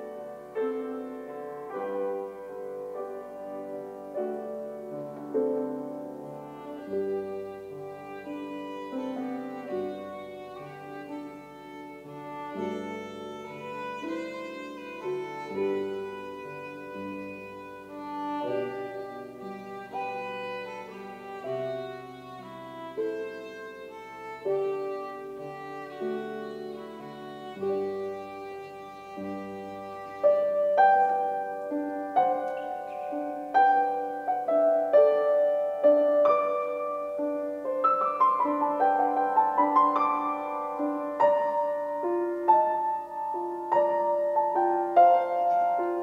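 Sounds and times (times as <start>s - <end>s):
violin melody: 0.0s - 46.0s.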